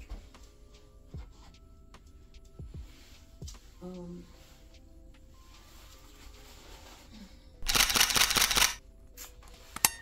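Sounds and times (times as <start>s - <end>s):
fabric rustling: 2.8s - 7.4s.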